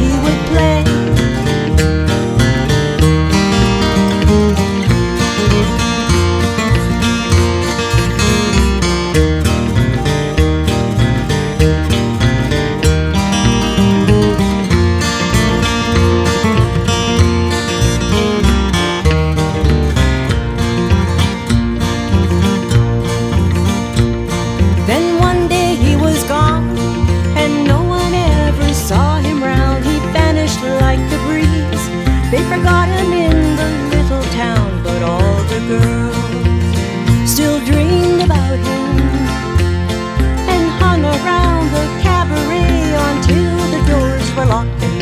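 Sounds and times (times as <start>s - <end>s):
flatpicked acoustic guitar melody: 0.0s - 45.0s
low bass notes: 0.0s - 45.0s.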